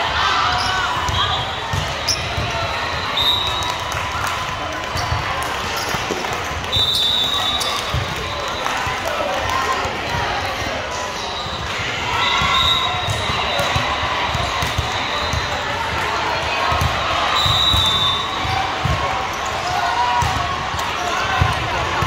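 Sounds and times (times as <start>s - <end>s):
many voices: 0.0s - 22.0s
referee whistles: 0.5s - 3.9s, 6.6s - 8.8s, 11.2s - 15.7s, 17.3s - 18.8s
volleyballs bouncing on gym floor: 1.0s - 2.7s, 12.3s - 22.0s.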